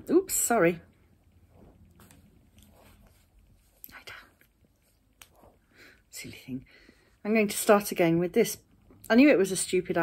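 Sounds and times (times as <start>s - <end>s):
faint soft rustles: 0.3s - 9.0s.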